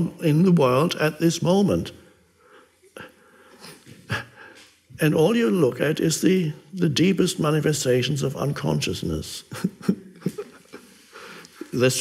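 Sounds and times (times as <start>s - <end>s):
man breathing: 2.0s - 4.8s, 10.8s - 11.7s.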